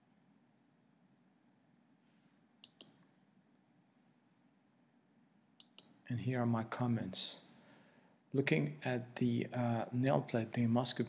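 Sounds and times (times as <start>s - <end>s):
faint sharp clicks: 2.6s - 3.0s, 5.6s - 6.0s.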